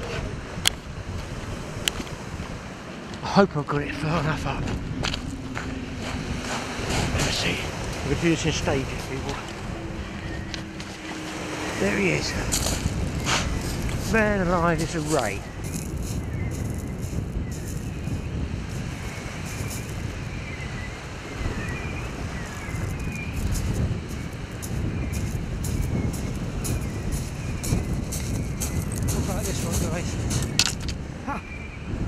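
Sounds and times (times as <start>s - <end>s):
wind buffeting microphone: 0.0s - 32.0s
footsteps on shingle: 1.1s - 3.2s, 4.2s - 8.1s, 8.7s - 20.4s, 22.5s - 31.0s.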